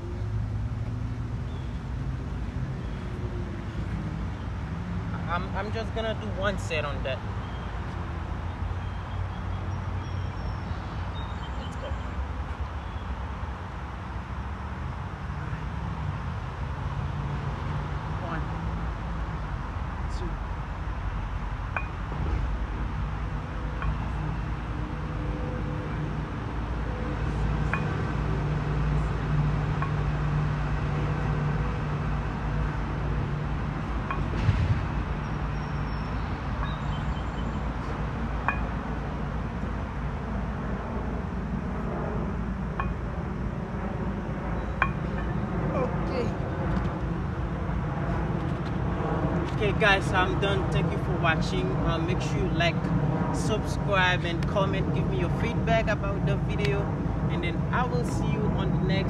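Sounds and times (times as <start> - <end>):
low outdoor rumble: 0.0 - 59.0.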